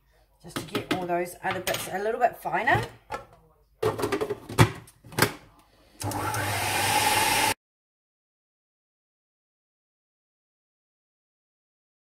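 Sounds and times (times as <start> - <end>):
food processor motor running: 6.0 - 7.6.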